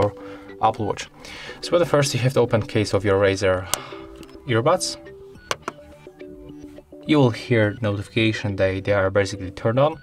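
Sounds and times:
earbuds notification tones: 3.7 - 8.4.

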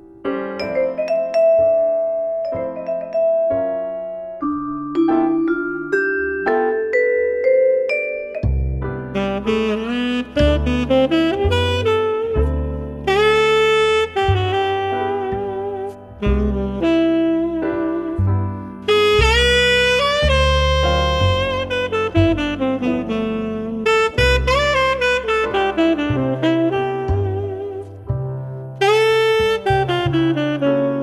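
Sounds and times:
bass: 0.0 - 31.0
saxophone melody: 4.4 - 31.0.

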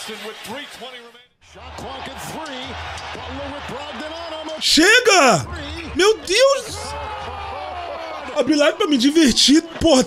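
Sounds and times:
arena crowd noise: 0.0 - 10.0
commentator talking: 4.6 - 6.9, 8.4 - 10.0.

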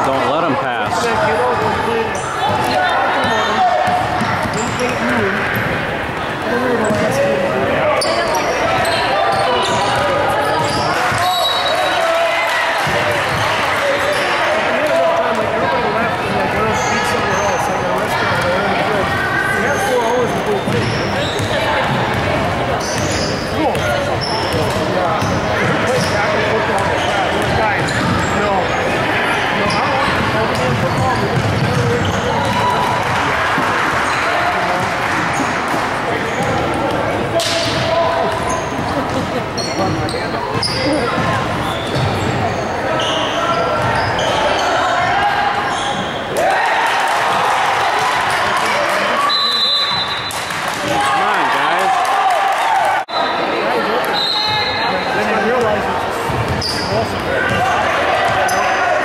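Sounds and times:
hubbub of voices: 0.0 - 59.0
sneakers squeaking: 0.8 - 12.0, 12.8 - 14.4, 16.4 - 46.4, 53.2 - 59.0
basketball bouncing on hardwood: 30.6 - 32.6.

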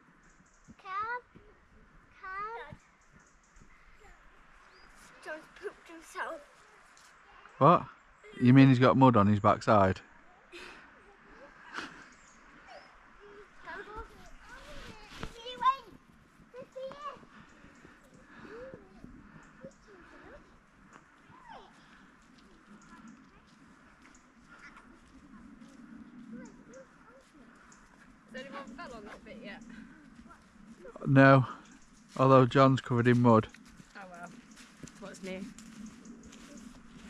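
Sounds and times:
distant voices talking and calling: 0.0 - 37.0.

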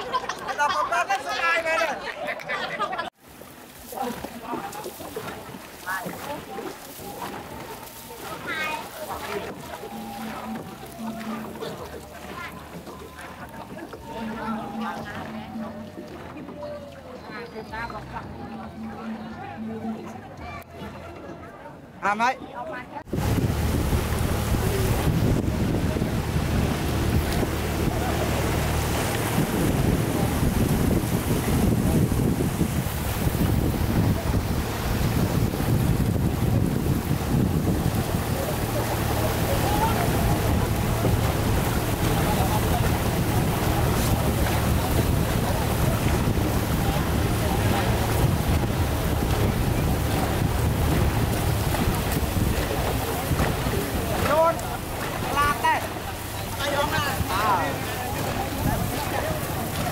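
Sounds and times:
rushing water: 0.0 - 21.3, 22.0 - 59.9
voices calling out: 3.8 - 21.8, 23.6 - 59.9
wind buffeting microphone: 23.1 - 59.9.

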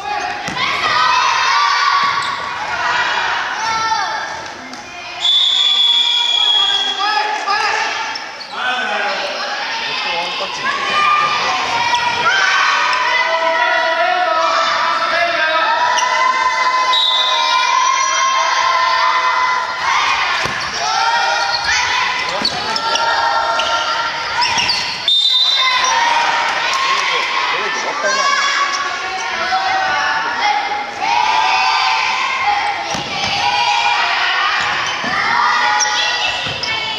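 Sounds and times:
children shouting: 0.0 - 5.2, 8.9 - 36.9.

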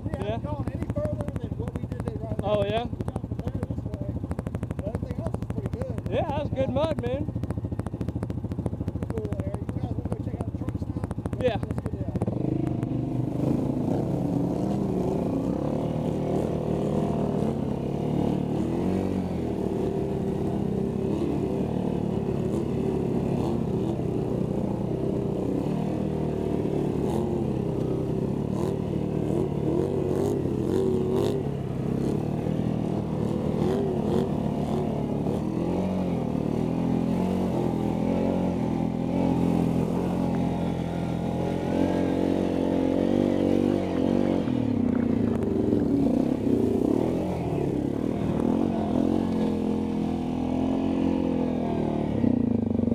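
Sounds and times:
atv engines revving under load: 0.0 - 52.9
mud and water splashing: 39.0 - 42.5.

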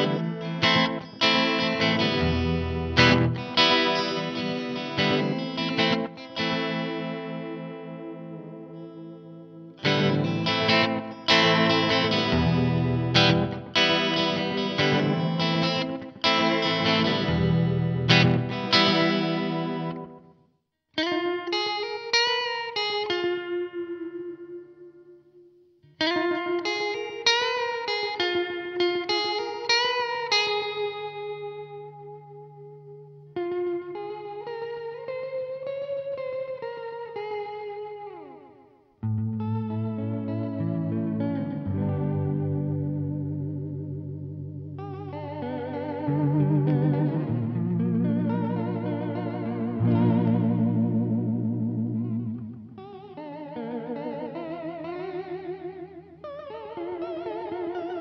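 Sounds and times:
electric guitar with warbling delay: 0.0 - 20.3, 21.0 - 58.0.

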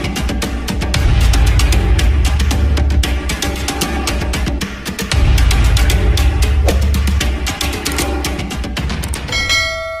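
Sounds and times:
background music with drum beat: 0.0 - 9.3
struck bell chime: 9.3 - 10.0.

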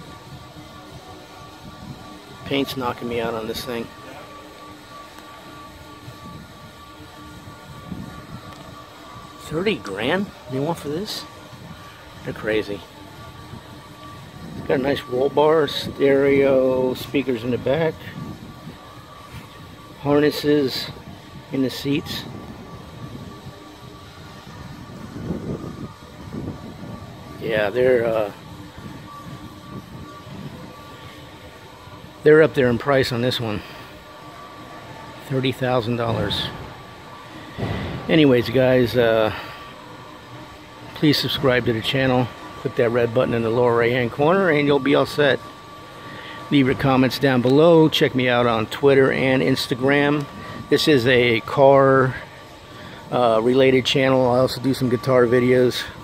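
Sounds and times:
faint constant tone: 0.0 - 56.0
indoor room hum: 0.0 - 56.0.

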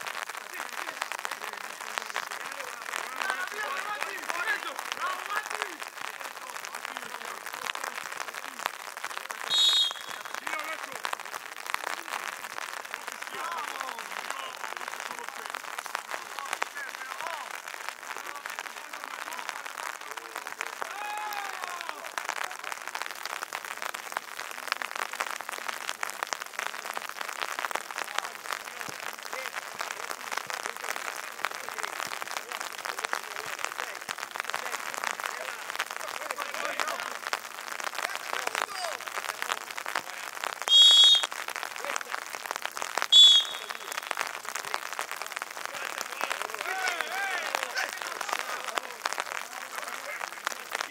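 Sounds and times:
players calling out: 0.4 - 8.7, 9.4 - 22.8, 28.2 - 42.2, 43.0 - 50.9
whistle blasts: 9.5 - 10.3, 40.7 - 41.3, 43.1 - 44.1.

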